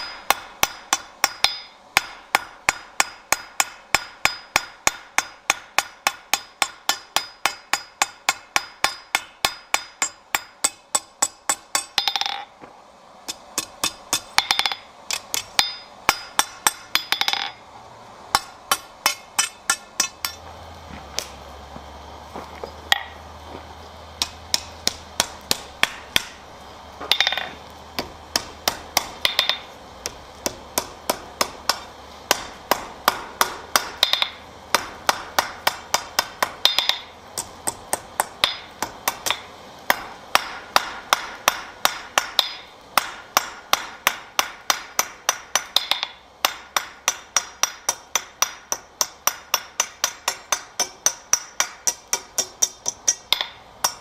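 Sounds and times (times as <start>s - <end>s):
hammer clanging on anvil: 0.0s - 12.5s, 13.3s - 17.6s, 18.4s - 20.4s, 22.9s - 23.2s, 27.0s - 29.7s, 30.8s - 54.0s.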